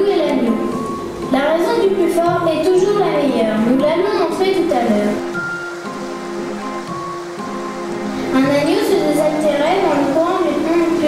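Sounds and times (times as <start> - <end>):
slow background music: 0.0 - 11.0
stream water rushing: 4.5 - 11.0.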